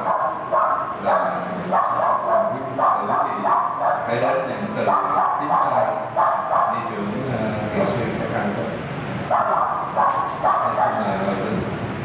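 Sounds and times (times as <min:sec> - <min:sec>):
man speaking over public address: 0:00.0 - 0:09.7, 0:10.4 - 0:11.8.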